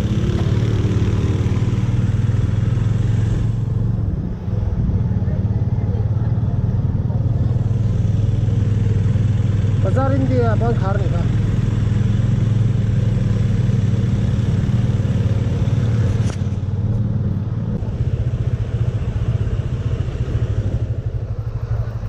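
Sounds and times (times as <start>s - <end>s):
motorcycle engine running: 0.0s - 22.0s.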